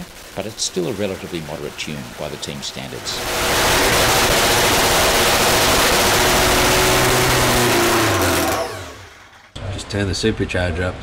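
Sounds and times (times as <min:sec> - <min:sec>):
drag motorcycle engine running: 0:00.0 - 0:09.6.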